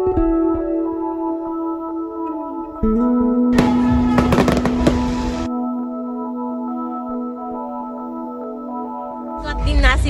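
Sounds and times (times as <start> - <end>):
background music: 0.0 - 10.0
fireworks popping and crackling: 3.6 - 5.5.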